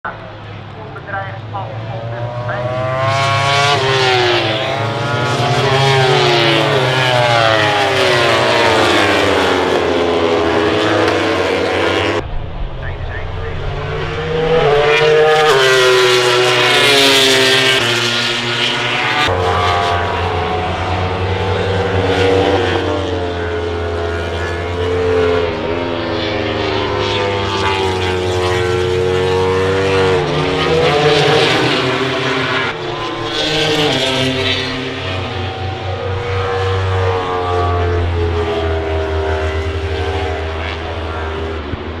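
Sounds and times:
racing motorcycles passing: 0.1 - 42.0
low drone: 5.6 - 42.0.

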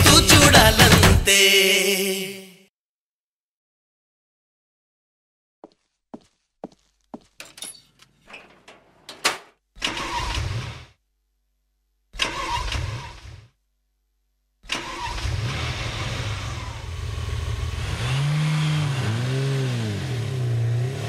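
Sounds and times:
vehicle engine starting and revving: 12.2 - 13.4, 14.7 - 21.0.

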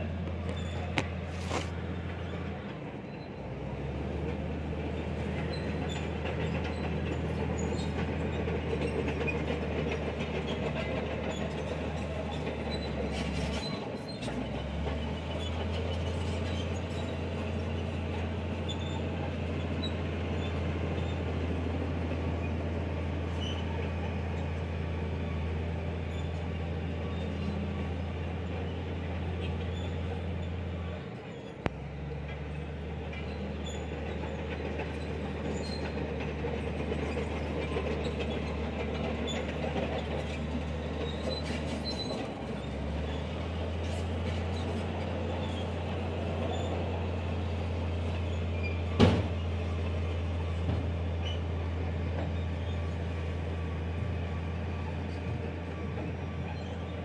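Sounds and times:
engine humming: 0.0 - 57.0.

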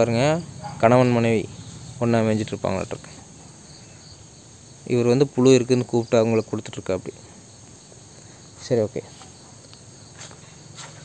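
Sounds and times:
man speaking: 0.0 - 3.3, 4.8 - 7.3, 8.6 - 9.2
insects chirring: 0.0 - 11.0.

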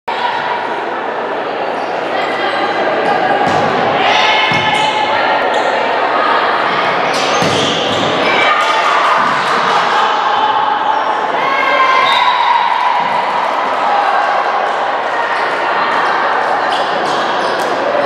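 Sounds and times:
players shouting calls: 2.3 - 18.0.

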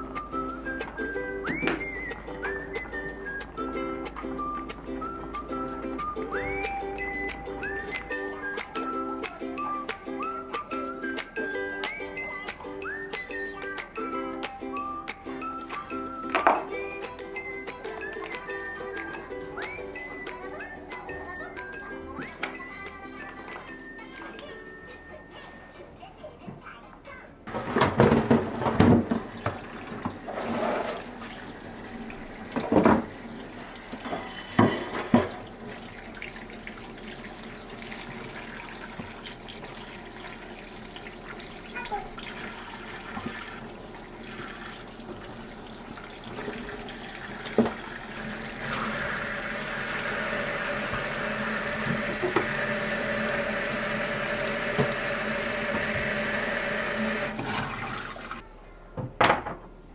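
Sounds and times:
tap water running into metal sink: 27.7 - 58.4.

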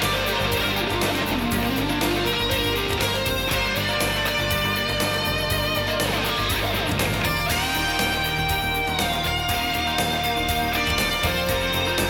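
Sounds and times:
bass: 0.0 - 12.0
electric guitar: 0.0 - 12.0
steady drum beat: 0.0 - 12.0.

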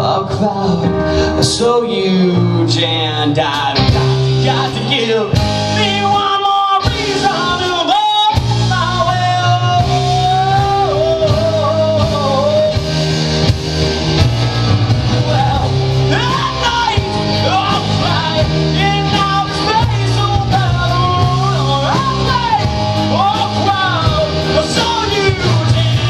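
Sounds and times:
male lead vocal singing: 0.0 - 13.0, 15.1 - 26.0
live rock band playing: 0.0 - 26.0.

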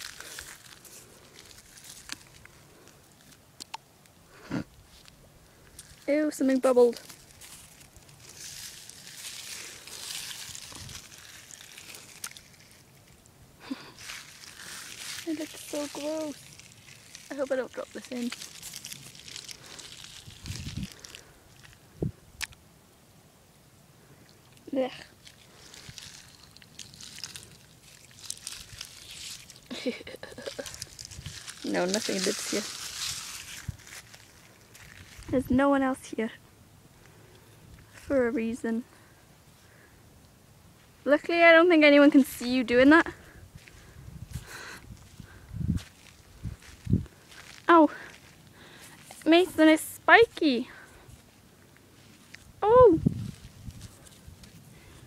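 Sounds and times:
faint crackles: 0.0 - 22.6, 24.0 - 55.0
foot shifting in wet mud: 6.9 - 13.2, 13.9 - 21.8, 25.1 - 35.3
pebble clicks: 6.9 - 21.8, 25.1 - 33.7
feet sloshing through shallow water: 25.2 - 29.7.

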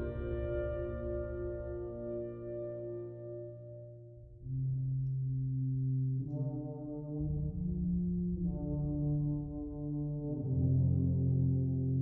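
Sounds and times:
low brass sustained chords: 0.0 - 12.0.

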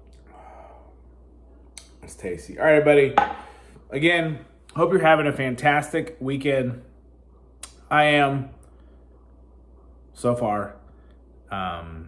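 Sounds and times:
man breathing while drinking: 3.3 - 3.9.

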